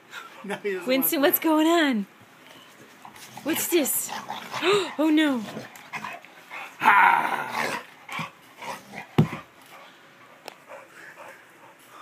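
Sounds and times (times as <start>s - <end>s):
dog growling and grunting: 3.3s - 6.2s, 6.8s - 9.1s.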